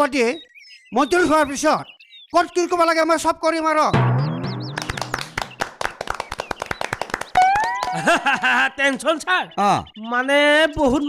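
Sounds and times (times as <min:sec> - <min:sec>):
crowd clapping: 0:04.6 - 0:08.5.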